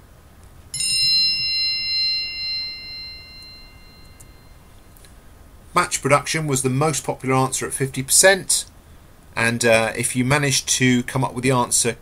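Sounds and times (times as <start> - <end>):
bright bing chime: 0.7 - 4.7.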